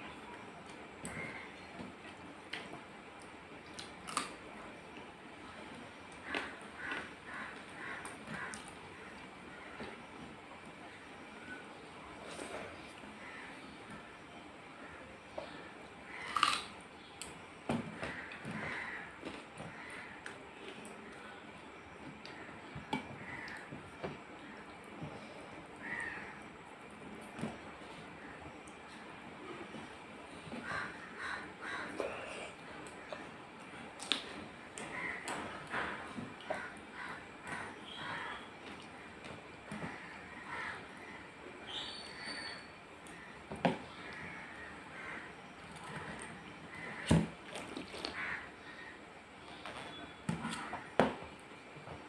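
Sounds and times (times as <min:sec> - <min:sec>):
bird calling: 0:39.9 - 0:47.1.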